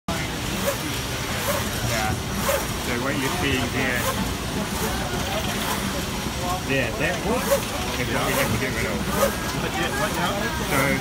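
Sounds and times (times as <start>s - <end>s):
conveyor machinery noise: 0.1s - 11.0s
faint voices: 0.1s - 11.0s.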